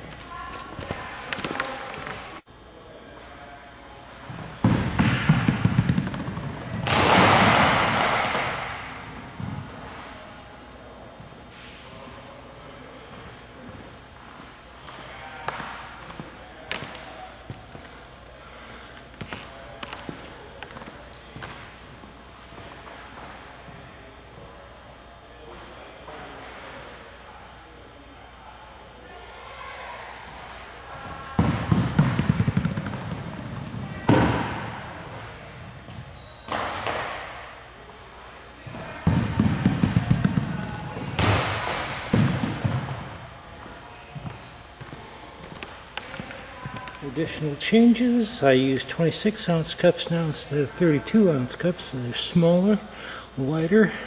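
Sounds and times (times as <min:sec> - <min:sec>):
plastic balls rolling on floor: 0:05.0 - 0:08.6, 0:31.7 - 0:34.4.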